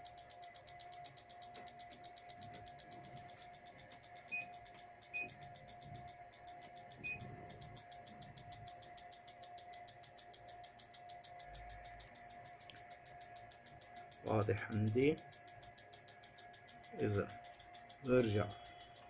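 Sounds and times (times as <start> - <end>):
fast even ticking: 0.0 - 19.0
electronics whine: 2.4 - 9.8, 16.6 - 19.0.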